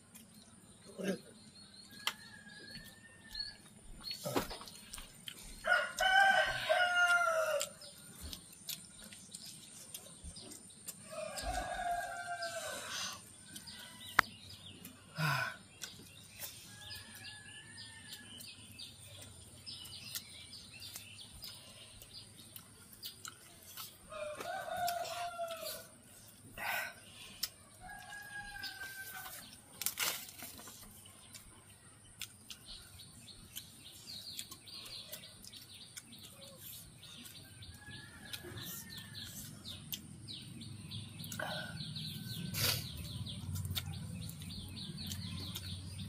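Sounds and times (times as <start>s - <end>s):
people eating by hand: 0.0s - 46.0s
rooster crowing: 5.6s - 7.8s, 11.0s - 14.2s, 24.1s - 25.9s, 27.8s - 29.4s.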